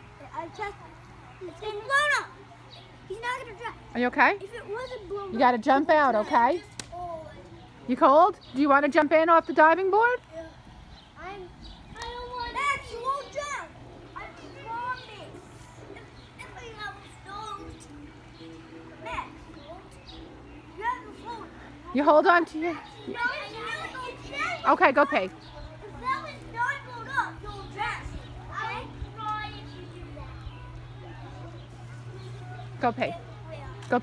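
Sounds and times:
children calling out: 0.0s - 3.9s, 11.2s - 17.9s, 22.8s - 31.7s
steady low hum: 9.5s - 34.0s.

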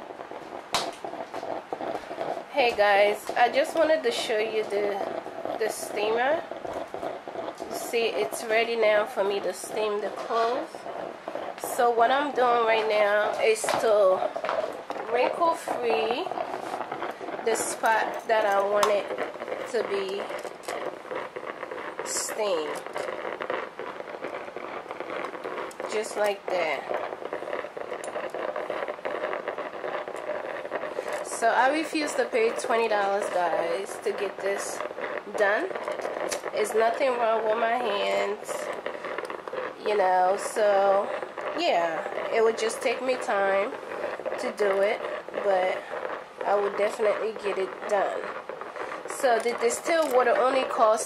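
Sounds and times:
garment steamer hissing: 0.0s - 51.0s.

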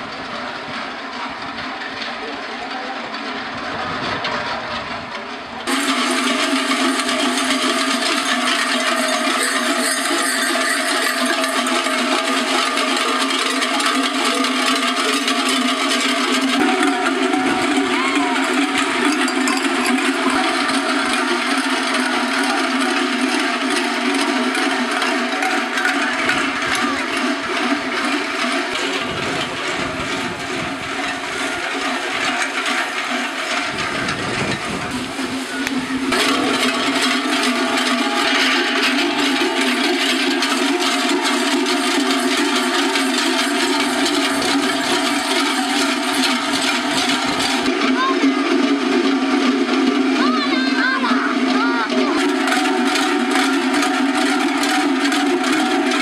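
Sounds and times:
large cowbells clanging: 0.0s - 56.0s.

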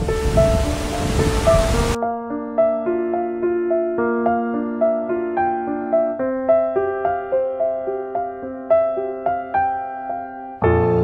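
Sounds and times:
waterfall roaring: 0.0s - 2.0s
gentle music of held notes: 0.0s - 11.0s.

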